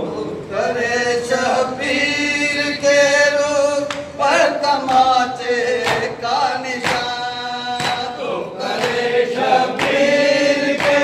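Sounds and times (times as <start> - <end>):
men chanting a lament through loudspeakers: 0.0 - 11.0.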